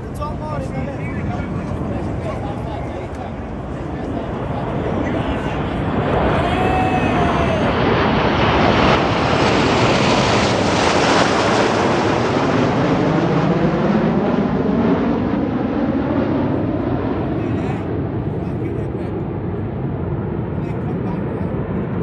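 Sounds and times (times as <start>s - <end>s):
jets flying past overhead: 0.1s - 22.0s.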